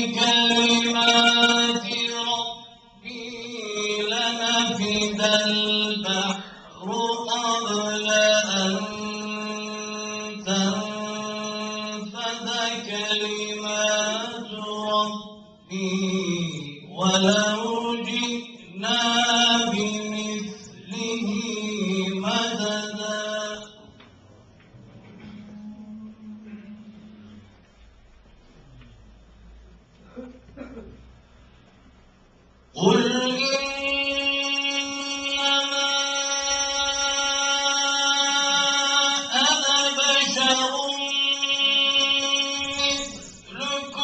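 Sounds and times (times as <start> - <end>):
man reciting melodically into microphone: 0.0 - 27.7, 32.6 - 44.0.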